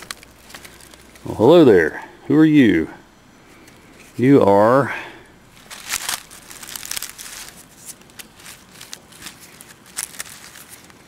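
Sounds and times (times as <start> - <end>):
dry leaves rustling and crackling: 0.0 - 1.3, 5.4 - 11.0.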